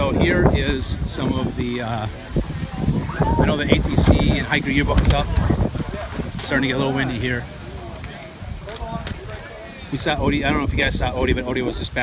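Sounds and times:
crowd talking: 0.0 - 12.0
wind rumbling on microphone: 0.0 - 12.0.

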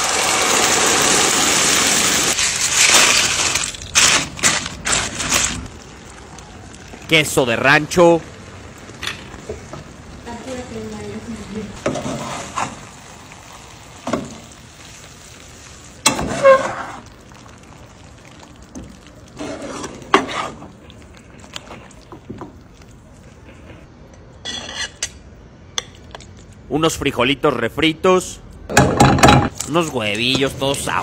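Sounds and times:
low frying sizzle: 0.0 - 23.9
spatula scraping a skillet: 11.8 - 12.8, 19.4 - 20.7.

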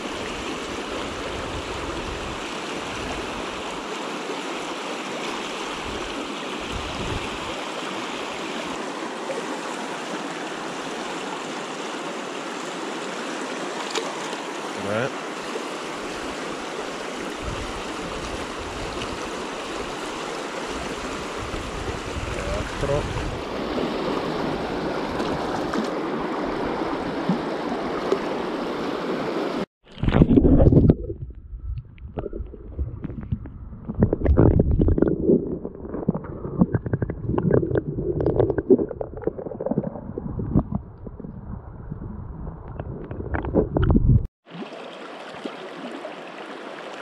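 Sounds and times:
flowing water rushing: 0.0 - 30.9, 42.7 - 47.0
muffled low bumps and rustles: 39.9 - 44.3.

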